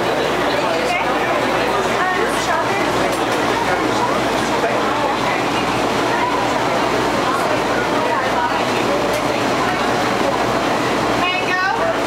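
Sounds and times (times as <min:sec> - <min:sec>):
busy cafe din: 0:00.0 - 0:12.0.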